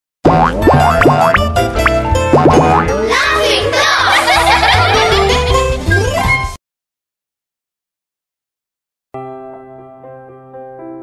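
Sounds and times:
bouncy children's music: 0:00.3 - 0:06.6
cartoon giggling: 0:04.0 - 0:05.4.

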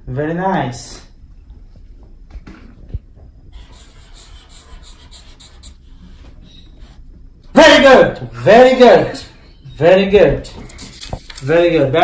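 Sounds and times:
marker strokes on paper: 0:03.5 - 0:07.0.

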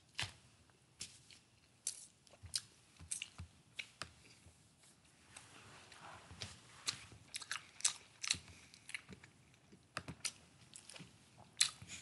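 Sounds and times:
person chewing food: 0:01.0 - 0:04.4, 0:06.3 - 0:12.0.

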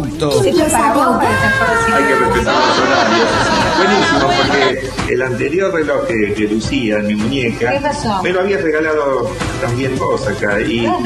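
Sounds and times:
people talking: 0:00.0 - 0:07.2.

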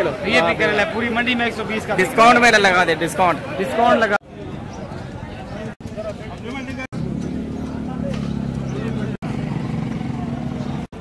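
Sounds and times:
market voices: 0:00.0 - 0:11.0
engine humming: 0:04.9 - 0:11.0.

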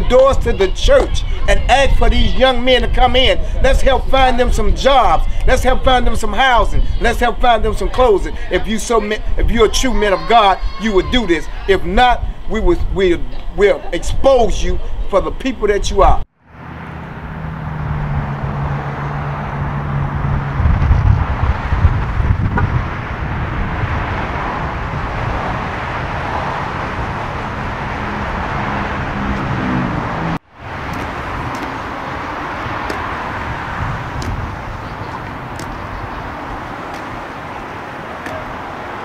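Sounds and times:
wind on microphone: 0:00.0 - 0:13.5, 0:17.9 - 0:39.0
steady traffic noise: 0:00.0 - 0:39.0
low vehicle rumble: 0:16.4 - 0:39.0.

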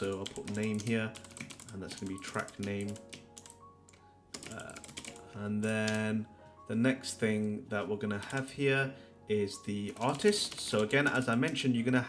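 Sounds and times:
computer keyboard typing: 0:00.0 - 0:06.1, 0:08.2 - 0:08.5, 0:09.8 - 0:12.0.

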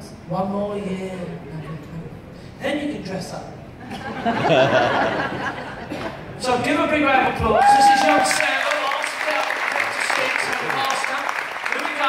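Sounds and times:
audience applauding: 0:07.5 - 0:12.0.

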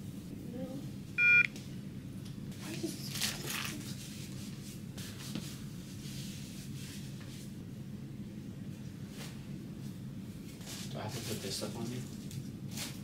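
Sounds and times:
short electronic beep: 0:01.2 - 0:01.5.

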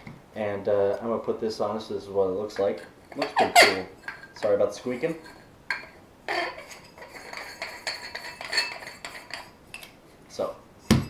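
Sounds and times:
cover squeaking on scope: 0:03.2 - 0:03.9.

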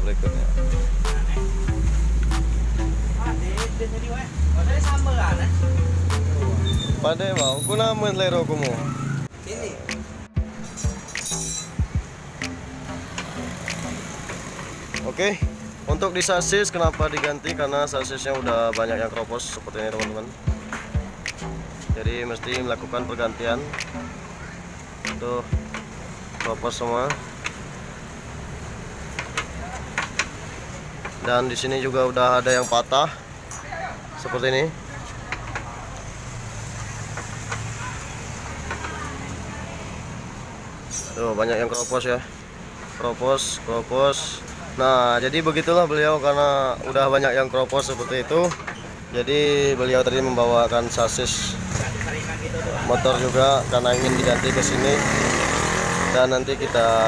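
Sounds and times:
background music: 0:00.0 - 0:32.7, 0:52.3 - 0:57.0.

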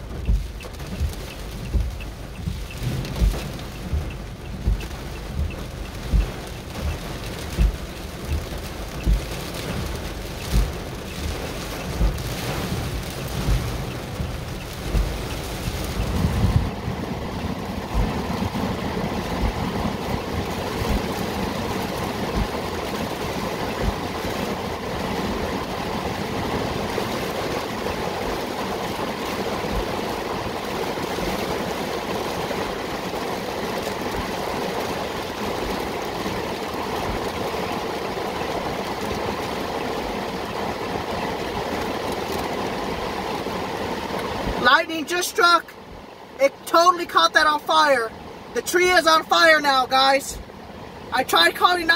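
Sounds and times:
low rumbles: 0:00.0 - 0:27.0
heavy rain on car roof: 0:00.0 - 0:51.9.

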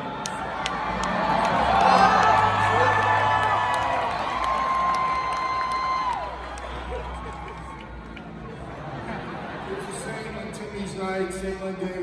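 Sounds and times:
crowd cheering and whooping: 0:00.0 - 0:09.7
music: 0:00.0 - 0:12.0.

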